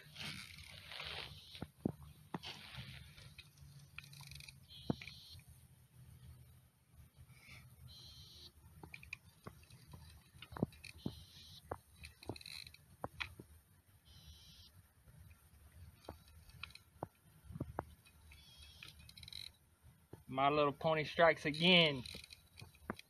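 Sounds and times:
fishing reel clicking and whirring: 0.2s - 1.5s, 3.3s - 5.3s, 7.9s - 13.3s, 18.0s - 19.6s, 21.1s - 23.0s.

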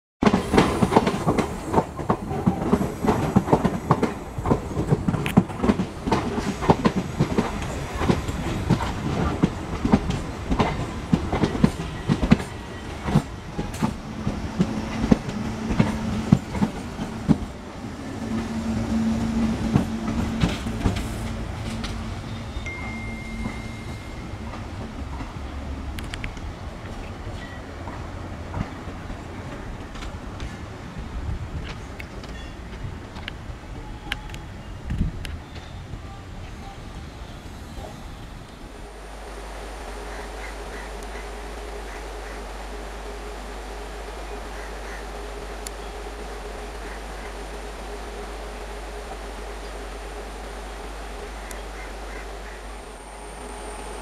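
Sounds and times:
train wheels clattering over rails: 0.2s - 38.7s
train rumble with low hum: 0.2s - 54.0s.

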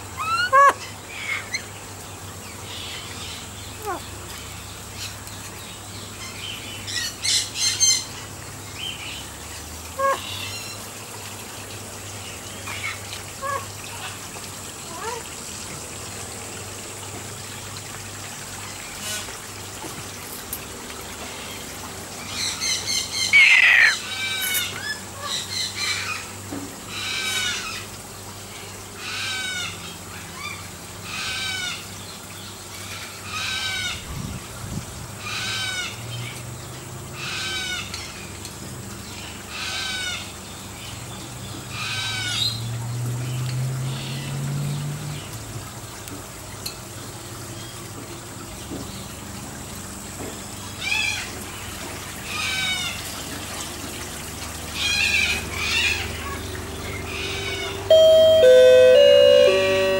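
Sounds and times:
cockatoo calling: 0.2s - 1.5s, 23.3s - 25.4s
cockatoo harsh squawk: 23.3s - 24.8s.

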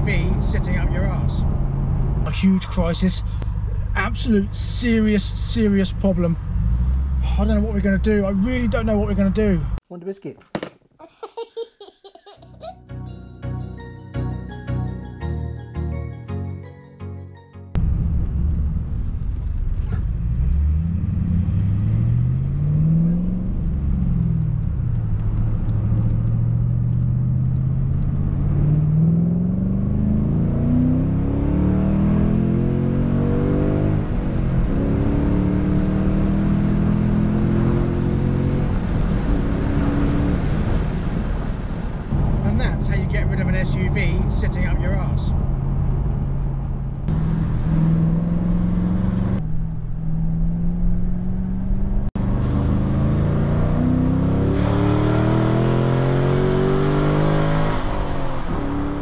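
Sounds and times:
car engine accelerating: 0.0s - 9.8s, 17.8s - 59.0s.

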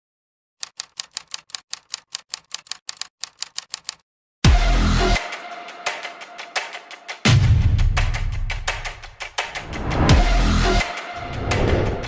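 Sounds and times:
rapid sharp clicks: 0.6s - 4.0s.

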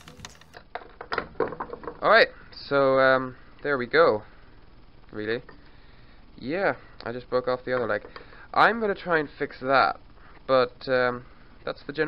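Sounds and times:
plastic and wooden parts knocking: 0.0s - 2.2s, 7.7s - 8.4s.

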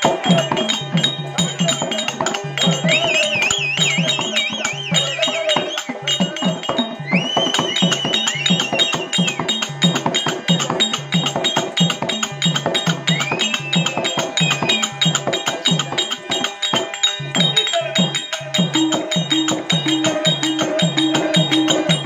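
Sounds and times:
hand drums beating fast rhythm: 0.0s - 22.0s
high wavering melody: 0.0s - 22.0s.

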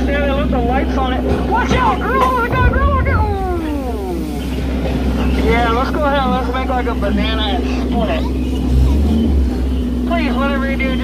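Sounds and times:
boat motor humming: 0.0s - 11.0s.

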